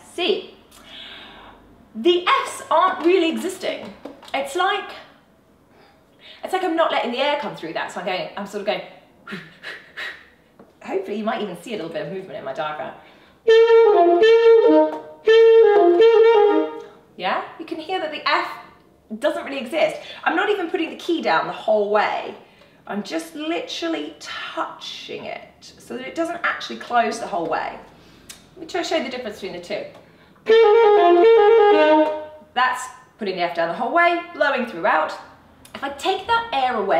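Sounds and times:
alto saxophone phrase: 13.5 - 16.8, 30.5 - 32.3.

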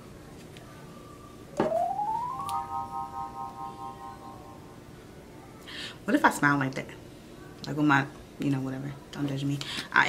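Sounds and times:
synthesizer hit: 1.6 - 4.6
synthesizer tone gliding up: 1.6 - 4.8.

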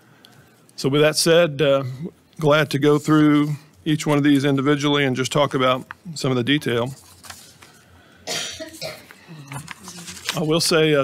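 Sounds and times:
person coughing: 8.3 - 9.7.

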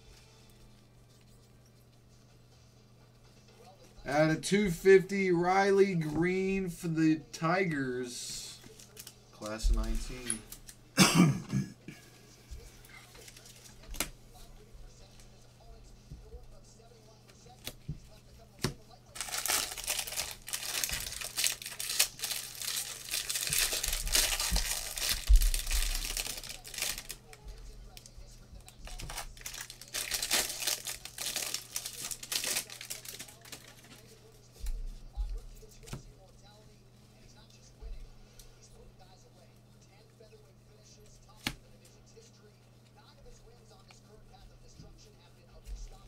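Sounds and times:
foil wrapper tearing and crinkling: 8.6 - 9.2, 13.1 - 14.1, 18.6 - 27.4, 28.6 - 34.1.

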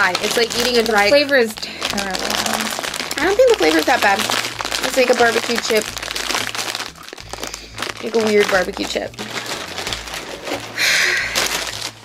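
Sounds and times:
plastic snack bag crinkling: 0.0 - 12.0.

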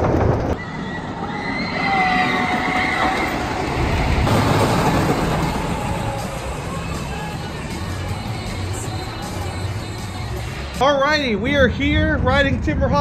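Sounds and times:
roller coaster rumbling on track: 0.0 - 8.7, 11.0 - 13.0.

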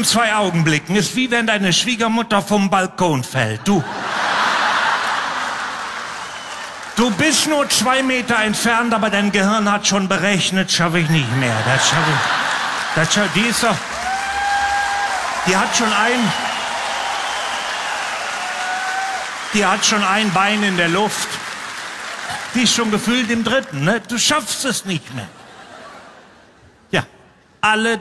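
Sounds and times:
audience applauding: 3.9 - 9.9, 11.1 - 24.5.

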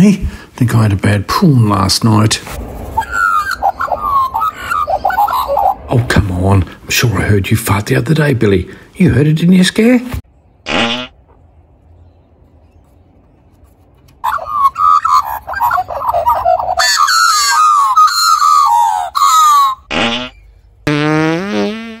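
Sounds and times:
magpies carolling: 2.6 - 6.5, 14.2 - 20.5
fart sounds: 10.7 - 11.1, 19.9 - 20.3, 20.9 - 22.0.

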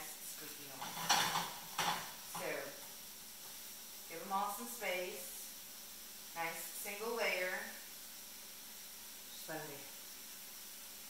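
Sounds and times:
light sizzle of oil: 0.0 - 11.0
spatula scraping frying pan: 0.7 - 2.7.

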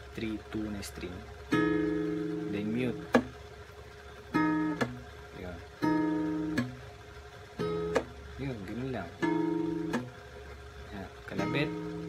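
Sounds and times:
guitar string mute: 0.0 - 12.0
acoustic guitar chord: 1.2 - 3.5, 4.1 - 12.0.

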